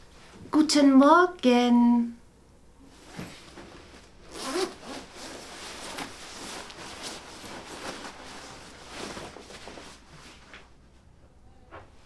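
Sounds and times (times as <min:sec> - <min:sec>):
jacket zipper being undone: 0:04.2 - 0:06.8.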